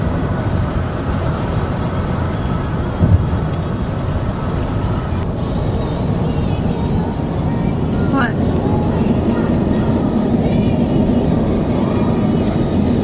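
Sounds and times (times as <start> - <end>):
car radio music: 0.0 - 13.0
car road and engine noise: 0.0 - 13.0.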